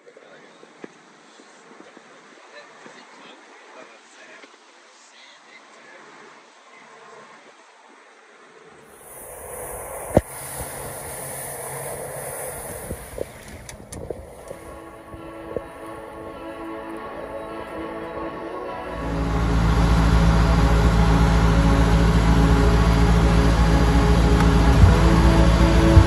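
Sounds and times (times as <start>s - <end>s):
wind: 0.0s - 26.0s
water rushing past boat: 8.9s - 26.0s
background music: 14.2s - 26.0s.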